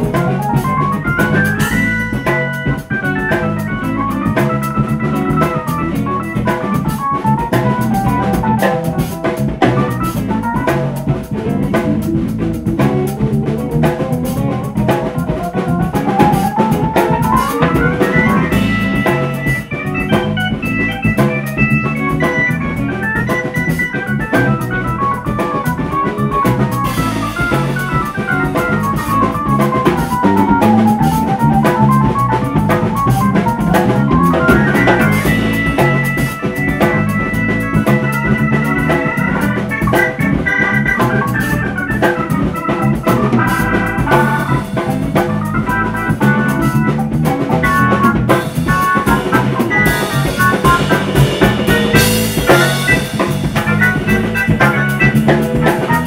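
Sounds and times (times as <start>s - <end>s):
drum kit with cymbals: 0.0s - 56.0s
organ melodic runs: 0.0s - 56.0s.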